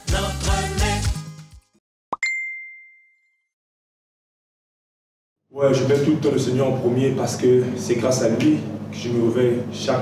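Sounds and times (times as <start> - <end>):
bright notification ding: 2.2 - 3.4.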